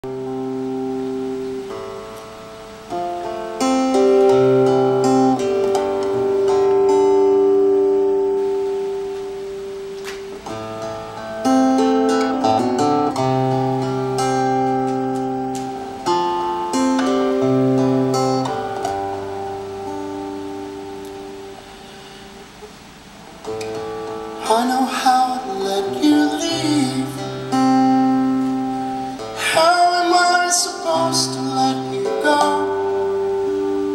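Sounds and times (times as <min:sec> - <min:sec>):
acoustic guitar strummed chords: 0:00.0 - 0:33.9.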